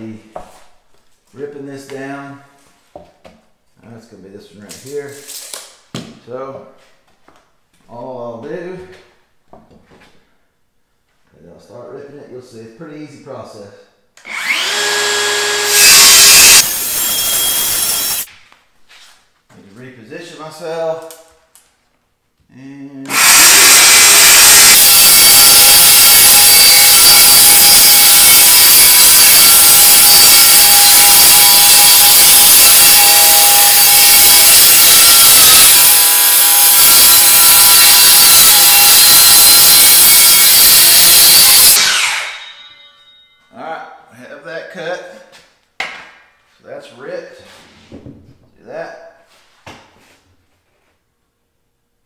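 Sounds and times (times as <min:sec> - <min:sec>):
circular saw cutting plywood: 0:14.3 - 0:18.3, 0:23.1 - 0:42.9.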